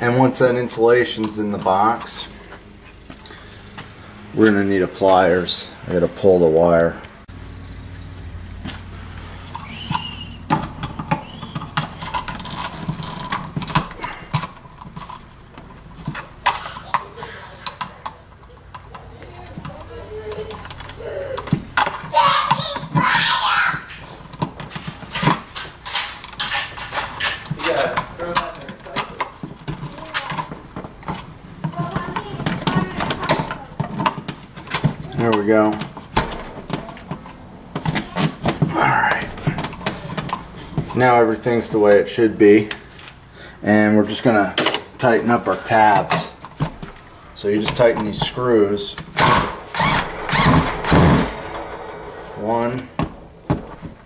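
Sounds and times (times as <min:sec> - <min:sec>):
clicks and rustles: 0:08.0 - 0:23.1, 0:23.8 - 0:41.1.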